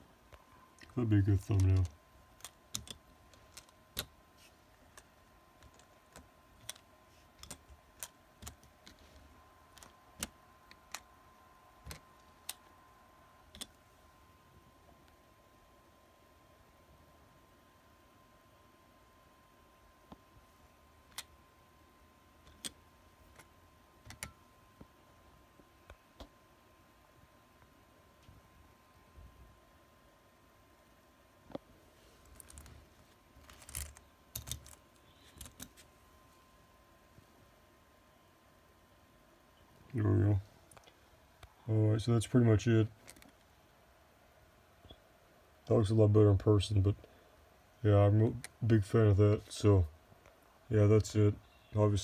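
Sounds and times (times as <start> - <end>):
faint high hum: 0.0 - 52.0
handling clicks and rustles: 0.3 - 11.2, 31.4 - 36.0.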